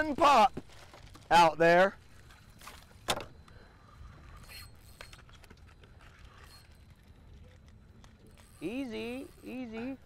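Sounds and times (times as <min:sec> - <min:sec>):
fishing reel clicks: 0:08.2 - 0:10.0.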